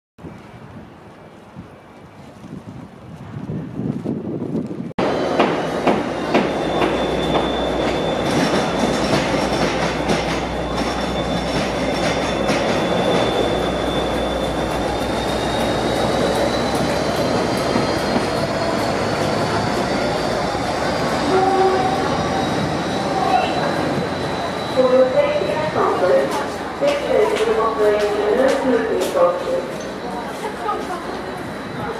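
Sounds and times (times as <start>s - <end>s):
diesel locomotive engine: 5.0s - 31.9s
station ambience: 5.0s - 31.9s
thin high squeal: 10.3s - 25.7s.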